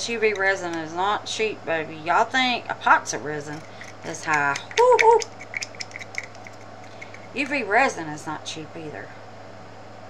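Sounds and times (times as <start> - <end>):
woman exclaiming: 4.4 - 5.3.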